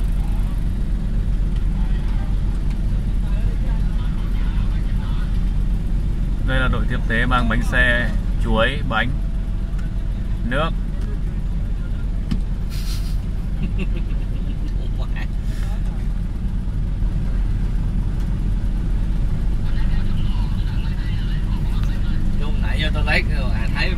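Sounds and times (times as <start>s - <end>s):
vehicle engines idling: 0.0s - 23.9s
short hiss: 12.7s - 13.3s.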